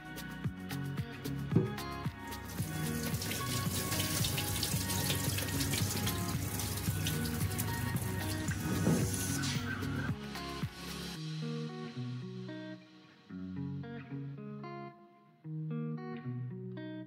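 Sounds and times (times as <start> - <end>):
background music: 0.0 - 17.0
water splashing in a sink: 2.4 - 9.5.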